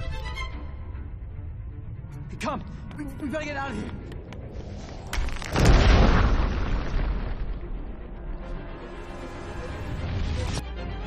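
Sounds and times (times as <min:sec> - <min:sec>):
background music: 0:00.0 - 0:04.8, 0:06.2 - 0:11.0
deep boom with rumble: 0:05.3 - 0:08.4.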